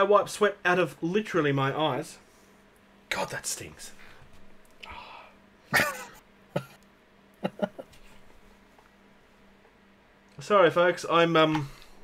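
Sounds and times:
man coughing: 5.7s - 6.8s.

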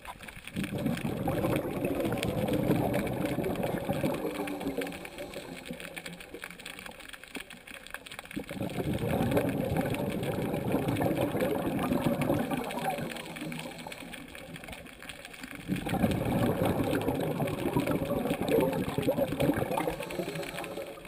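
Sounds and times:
diver's exhaled bubbles rattling: 0.0s - 21.0s.

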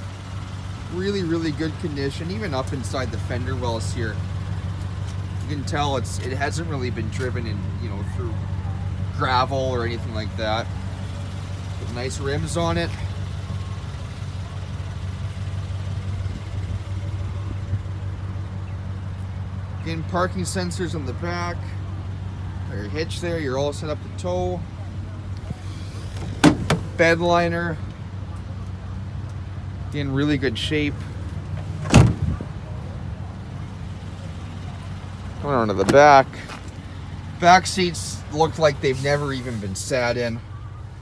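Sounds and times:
truck engine idling: 0.0s - 41.0s
loud thump: 26.2s - 26.9s, 31.8s - 32.4s.

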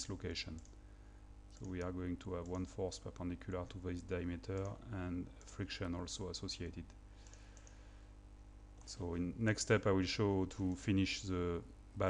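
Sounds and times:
faint room hum: 0.0s - 12.0s
computer mouse clicks: 0.6s - 0.8s, 1.6s - 3.2s, 7.2s - 7.8s.

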